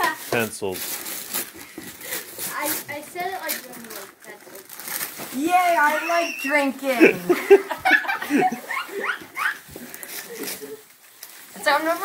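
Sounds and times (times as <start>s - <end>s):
wrapping paper rustling: 0.0s - 12.0s.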